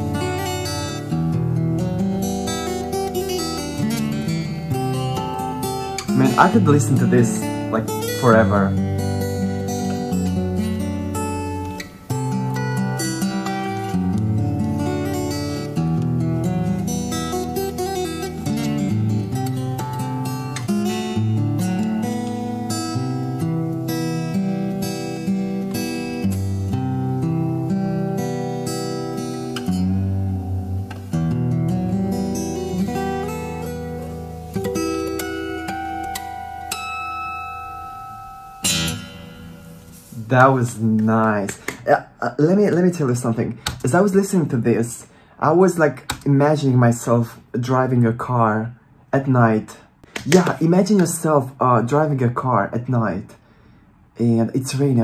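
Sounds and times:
fingerstyle acoustic guitar: 0.0 - 45.3.

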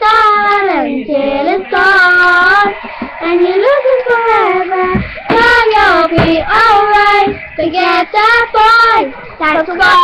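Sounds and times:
girls singing a pop song: 0.0 - 10.0.

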